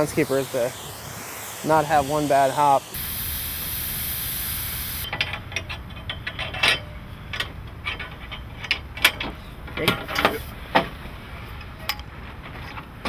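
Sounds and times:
hose spraying water: 0:00.0 - 0:05.2.

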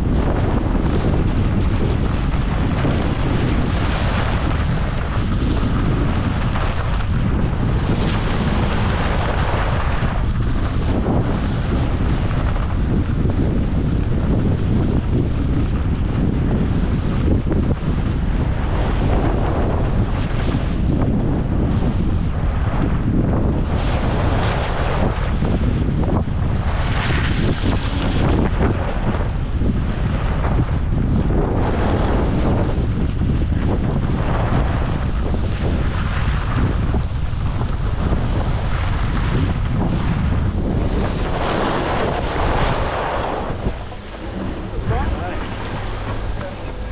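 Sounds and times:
wind buffeting microphone: 0:00.0 - 0:46.9
skis scraping snow: 0:00.3 - 0:12.5, 0:26.5 - 0:29.2, 0:34.1 - 0:46.9.

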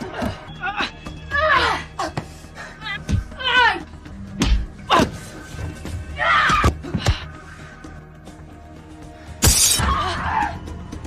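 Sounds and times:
film music score: 0:00.0 - 0:11.0
glass shattering: 0:09.4 - 0:09.8.

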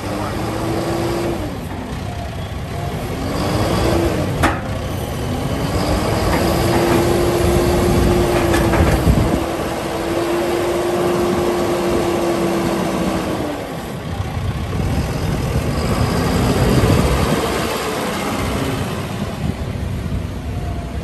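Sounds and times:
tractor diesel engine running: 0:00.0 - 0:21.0
sharp clunk: 0:04.4 - 0:04.8.

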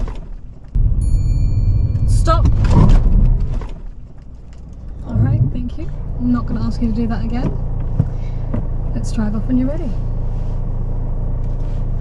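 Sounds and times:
car engine and road noise: 0:00.0 - 0:12.0.

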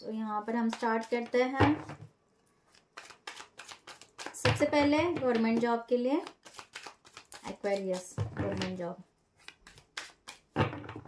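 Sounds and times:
cards being shuffled: 0:02.7 - 0:10.8.

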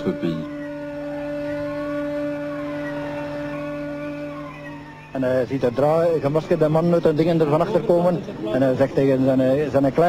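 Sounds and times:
steady droning tone: 0:00.0 - 0:06.6.

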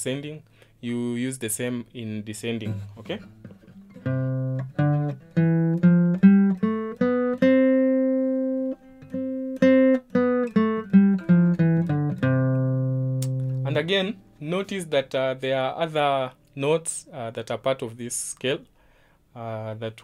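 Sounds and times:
acoustic guitar scale notes: 0:01.7 - 0:17.9.

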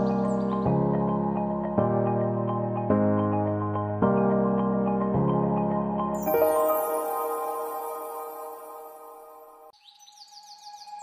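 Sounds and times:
bird chirping: 0:00.0 - 0:00.7, 0:06.2 - 0:11.0
soft background music: 0:00.0 - 0:11.0.

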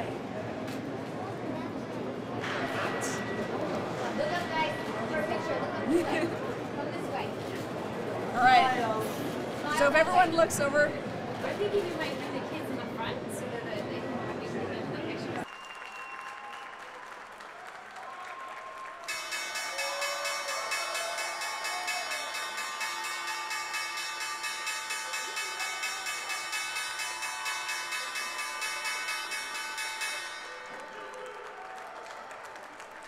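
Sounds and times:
applause: 0:15.4 - 0:22.4, 0:30.2 - 0:33.0
bell ringing continuously: 0:19.1 - 0:31.4.

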